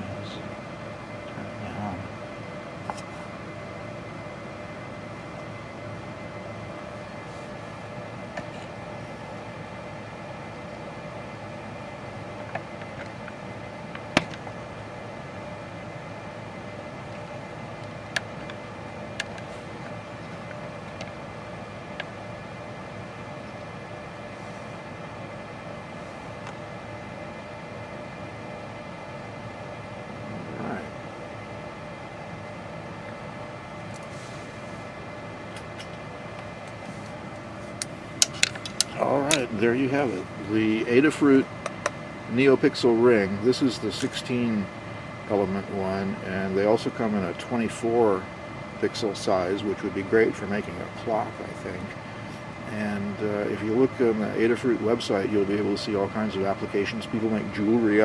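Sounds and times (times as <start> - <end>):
background hum and hiss: 0.0 - 58.0.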